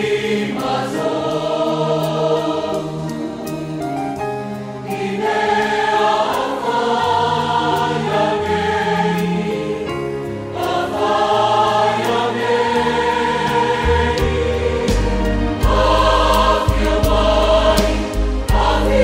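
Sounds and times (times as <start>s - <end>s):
church choir singing a hymn: 0.0s - 3.8s, 4.8s - 19.0s.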